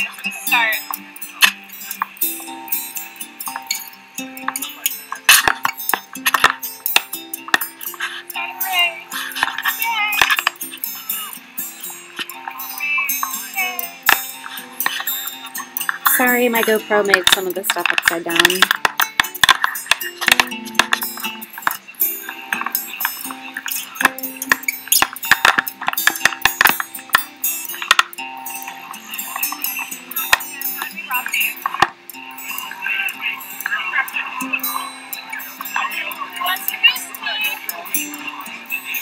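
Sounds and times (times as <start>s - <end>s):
voices: 0.0s - 26.8s, 28.7s - 39.0s
music: 0.0s - 39.0s.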